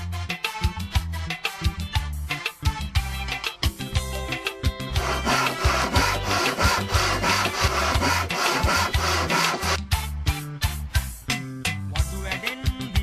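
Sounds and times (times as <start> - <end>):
handsaw cutting wood: 4.9 - 9.8.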